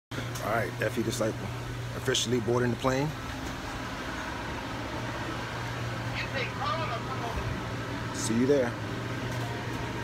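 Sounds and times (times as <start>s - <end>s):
low ventilation hum: 0.1s - 10.0s.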